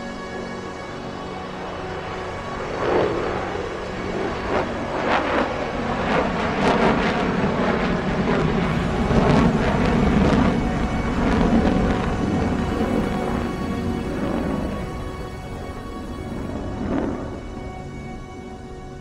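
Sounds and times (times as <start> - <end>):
dramatic background music: 0.0 - 19.0
jet engine rumble: 6.2 - 17.6.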